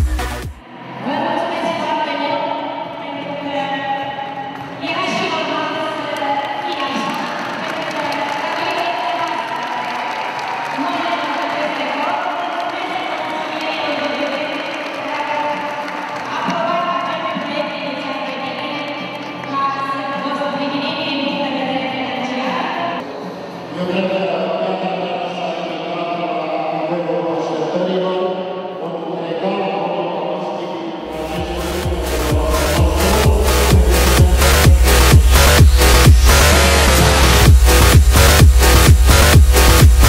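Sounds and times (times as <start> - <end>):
speech: 0.8 - 10.0, 10.8 - 15.7, 16.3 - 34.8
people singing with music: 31.0 - 40.0.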